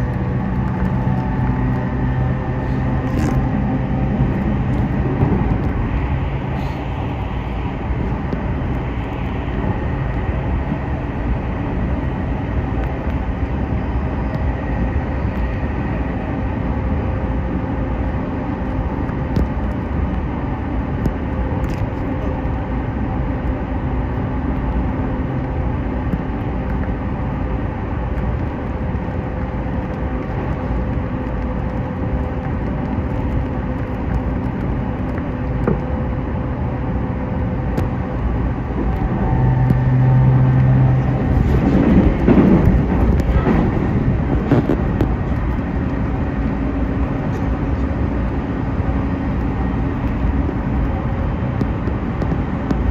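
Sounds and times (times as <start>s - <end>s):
low hum: 0.0s - 52.9s
rumble of train wheels on rails: 0.0s - 52.9s.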